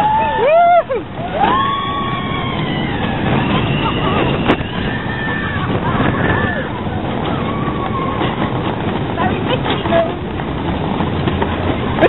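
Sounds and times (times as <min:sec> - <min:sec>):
high gliding wails: 0:00.0 - 0:08.5
roller coaster rush and track noise: 0:00.0 - 0:12.0.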